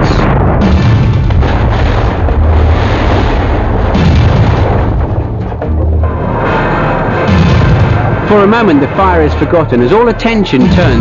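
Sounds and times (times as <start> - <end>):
deep booming explosion rumble: 0.0 - 11.0
dramatic music: 0.0 - 11.0.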